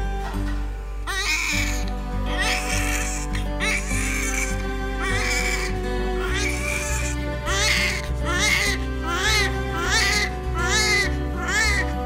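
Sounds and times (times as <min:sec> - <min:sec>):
music of held notes: 0:00.0 - 0:12.0
newborn baby crying: 0:01.0 - 0:12.0.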